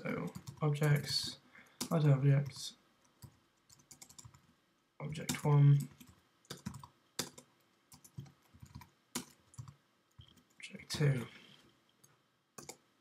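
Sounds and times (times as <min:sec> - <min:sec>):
keyboard typing: 0:00.2 - 0:04.5, 0:05.2 - 0:11.2, 0:12.0 - 0:12.8.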